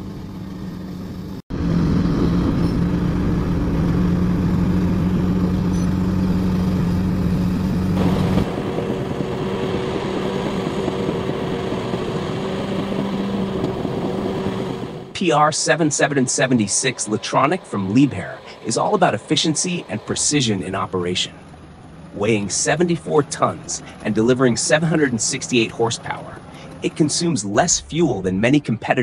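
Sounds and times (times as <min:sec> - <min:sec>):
bulldozer engine higher hum: 0:00.0 - 0:29.0
bulldozer engine low drone: 0:00.0 - 0:29.0.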